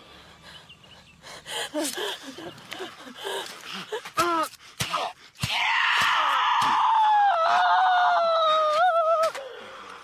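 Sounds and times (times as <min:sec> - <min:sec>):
person screaming: 0:05.4 - 0:09.3.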